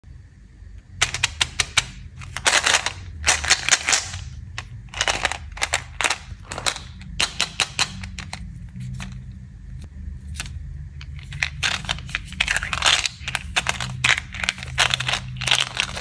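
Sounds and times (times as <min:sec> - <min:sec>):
plastic packaging clicking and crackling: 0:01.0 - 0:09.2, 0:10.4 - 0:16.0.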